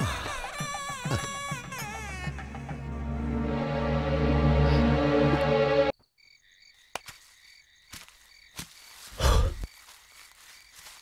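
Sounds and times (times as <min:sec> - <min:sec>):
film background music: 0:00.0 - 0:05.9
steady high night chirping: 0:04.2 - 0:11.0.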